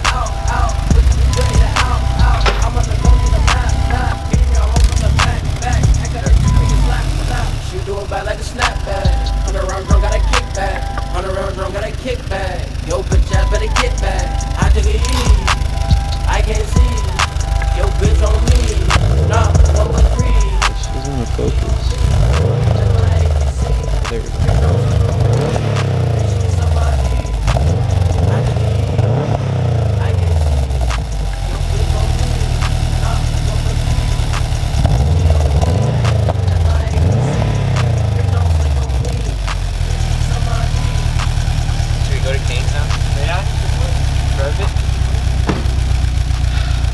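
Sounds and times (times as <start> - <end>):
car engine idling: 0.0 - 46.9
car engine revving: 0.0 - 46.9.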